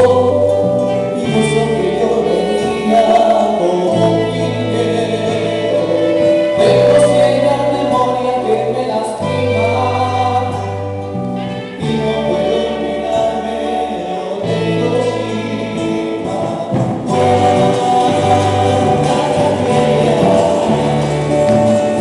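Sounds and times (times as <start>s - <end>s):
electric bass: 0.0s - 22.0s
strummed acoustic guitars: 0.0s - 22.0s
men singing together: 1.1s - 10.8s, 11.8s - 22.0s.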